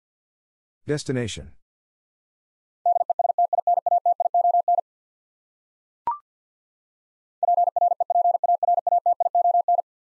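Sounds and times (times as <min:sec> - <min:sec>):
morse code beeps: 0:02.9 - 0:04.8, 0:07.4 - 0:09.8.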